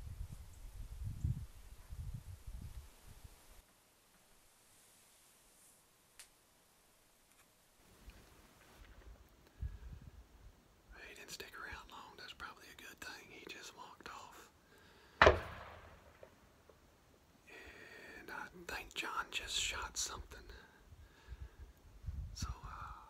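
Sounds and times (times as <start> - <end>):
rifle shot: 15.2 - 16.4.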